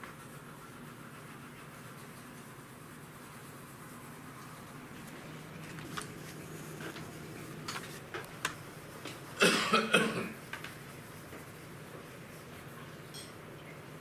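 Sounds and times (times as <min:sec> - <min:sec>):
person coughing: 0:09.4 - 0:10.4.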